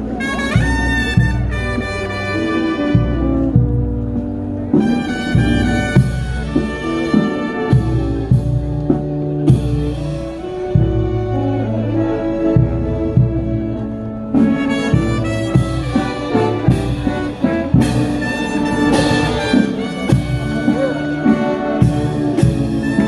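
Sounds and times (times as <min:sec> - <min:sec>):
trumpets and trombones: 0:00.0 - 0:23.0
regular drumbeat: 0:00.2 - 0:11.4, 0:12.5 - 0:23.0.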